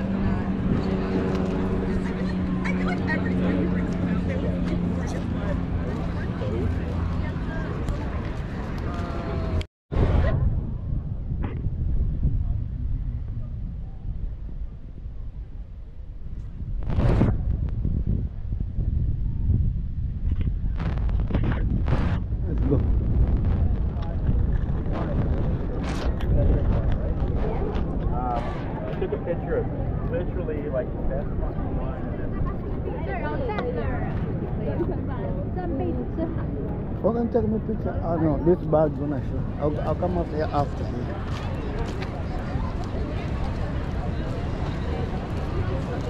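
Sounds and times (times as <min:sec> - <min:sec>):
people chattering: 0:00.0 - 0:10.5, 0:22.4 - 0:46.0
wind buffeting microphone: 0:00.0 - 0:46.0.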